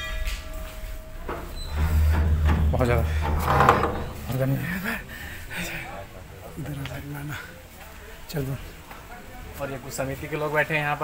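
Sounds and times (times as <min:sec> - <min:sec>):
indistinct voices: 0:00.0 - 0:10.3.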